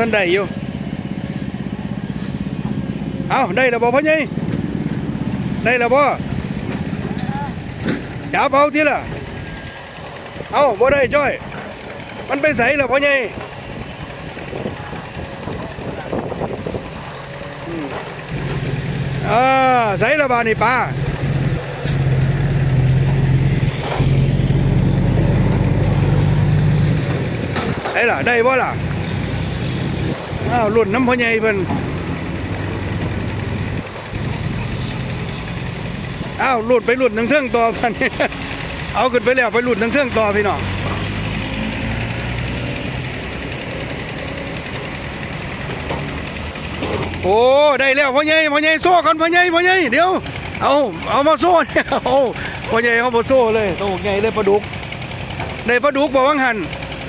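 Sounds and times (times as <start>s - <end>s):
small engine running: 0.0s - 57.0s.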